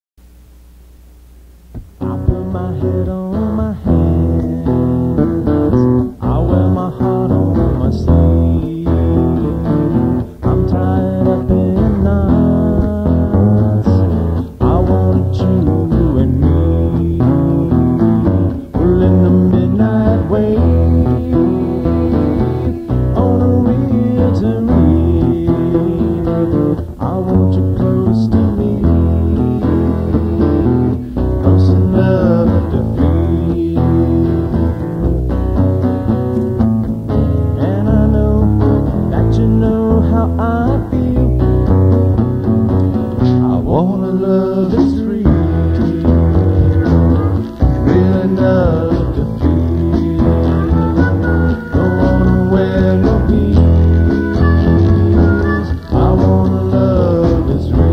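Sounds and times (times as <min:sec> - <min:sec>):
band music with guitars and bass: 0:01.7 - 0:57.9.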